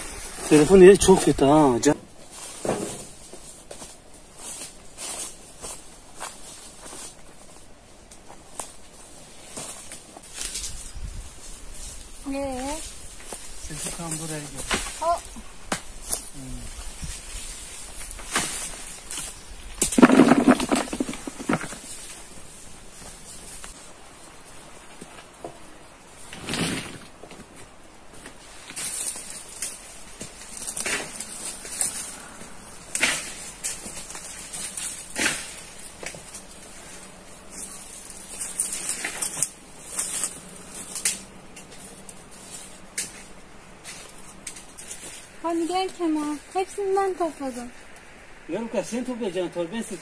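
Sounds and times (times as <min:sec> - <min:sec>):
walnuts rustling in leaves: 0:08.4 - 0:25.0, 0:28.2 - 0:47.9.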